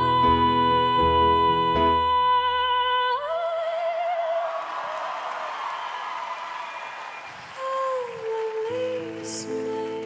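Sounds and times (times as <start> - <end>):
woman singing with vibrato: 0.0 - 5.0, 7.6 - 10.0
audience cheering and applause: 3.5 - 10.0.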